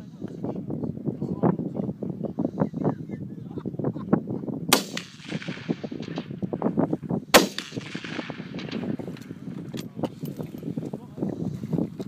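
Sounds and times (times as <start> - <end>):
rifle shot with echo: 4.7 - 6.6, 7.3 - 9.5.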